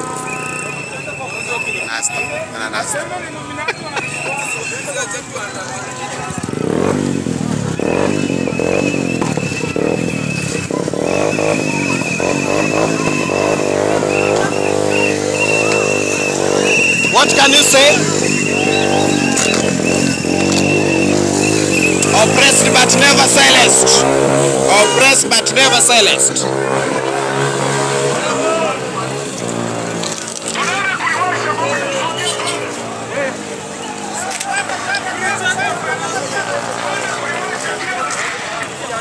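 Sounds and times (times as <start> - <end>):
crowd voices: 0.0 - 39.0
motorcycle engines revving: 0.0 - 39.0.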